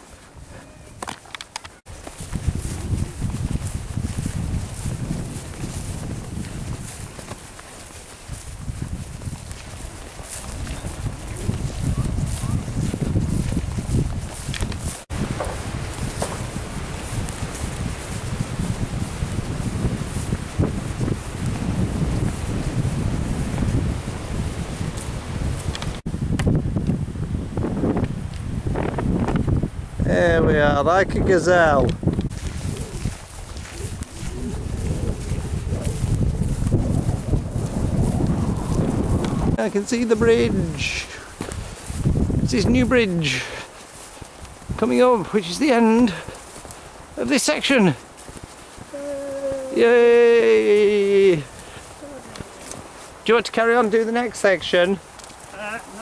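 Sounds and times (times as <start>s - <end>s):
wind on microphone: 0.0s - 53.3s.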